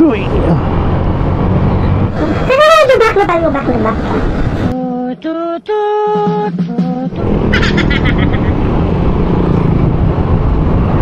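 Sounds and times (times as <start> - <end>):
wind noise on microphone: 7.2 - 11.0.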